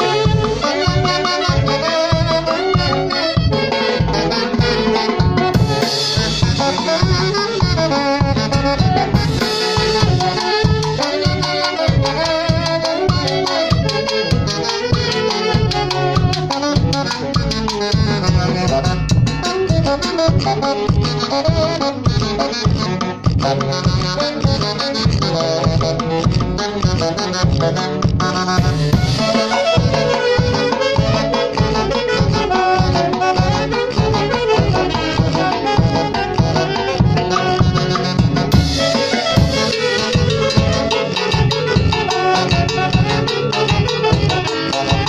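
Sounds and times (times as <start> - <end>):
bass drum beat: 0.0 - 45.0
saxophones playing lively tune: 0.0 - 45.0.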